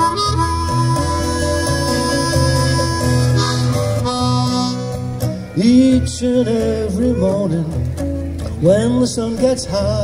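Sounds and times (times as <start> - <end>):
harmonica blues solo: 0.0 - 7.0
strummed acoustic guitar: 0.0 - 10.0.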